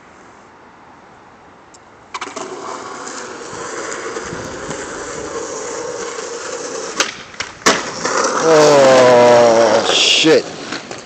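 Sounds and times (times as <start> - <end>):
skateboard wheels rolling on concrete: 0.0 - 11.0
skateboard clack: 2.1 - 11.0
skateboard tail snap: 6.9 - 8.3.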